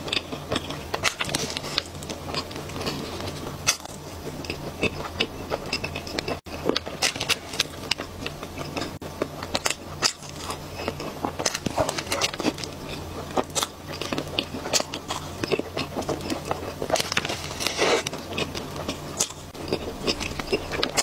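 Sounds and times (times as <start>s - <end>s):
chewing with wet mouth clicks: 0.0s - 21.0s
low hum: 0.0s - 21.0s.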